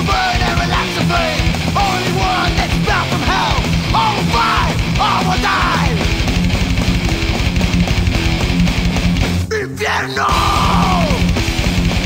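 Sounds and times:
distorted electric guitar lead: 0.0s - 12.0s
thrash metal band recording: 0.0s - 12.0s.

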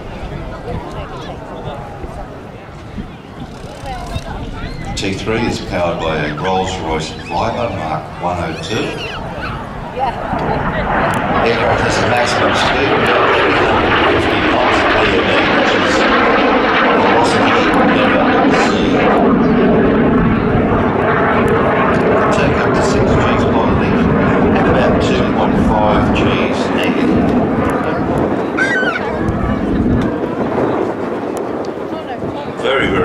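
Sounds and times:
jet engine roaring: 0.0s - 33.0s.

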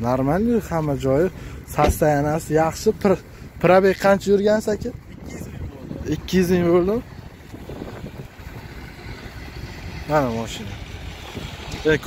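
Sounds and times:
wind buffeting microphone: 1.6s - 12.0s.

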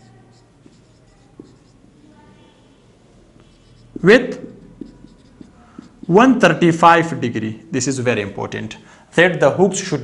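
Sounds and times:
marker writing on whiteboard: 0.0s - 2.7s, 3.3s - 6.8s.

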